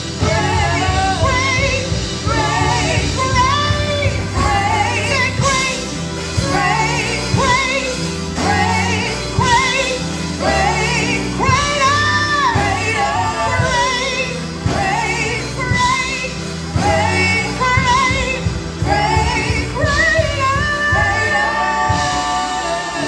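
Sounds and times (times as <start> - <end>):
bass line: 0.0 - 23.0
group singing worship song: 0.0 - 23.0
keyboard accompaniment: 0.0 - 23.0.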